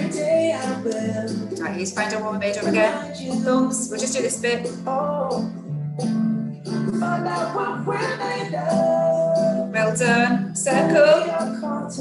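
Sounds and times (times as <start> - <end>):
pop song with acoustic backing: 0.0 - 12.0.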